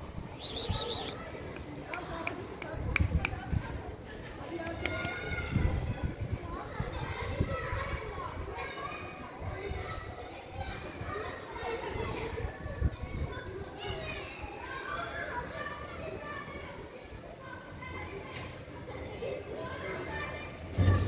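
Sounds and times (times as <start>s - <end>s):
children calling and shouting: 0.0s - 21.0s
low thump: 20.8s - 21.0s.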